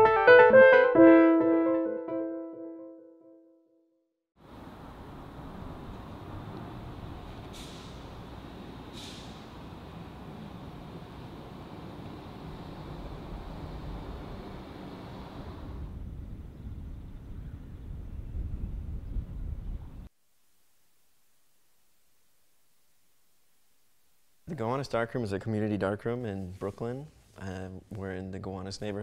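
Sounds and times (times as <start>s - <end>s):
rumble of passing vehicles: 4.4s - 17.7s
short sharp hisses: 7.5s - 8.1s, 8.9s - 9.6s.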